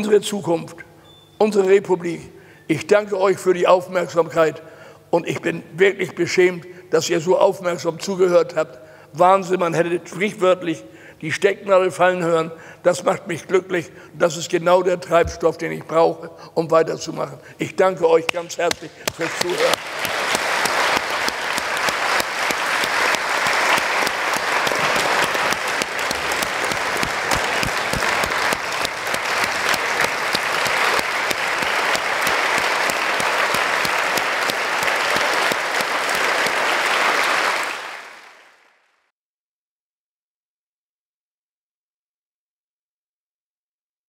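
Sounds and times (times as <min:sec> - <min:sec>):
audience applauding: 0:18.7 - 0:38.7.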